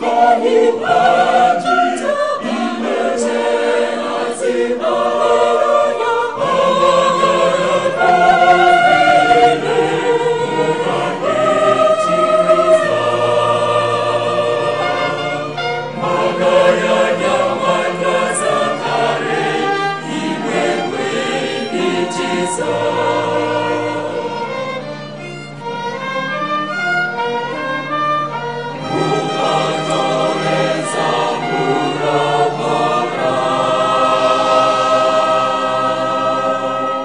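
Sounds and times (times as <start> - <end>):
mixed choir singing: 0.0 - 25.8, 28.4 - 37.0
string ensemble playing: 0.0 - 37.0.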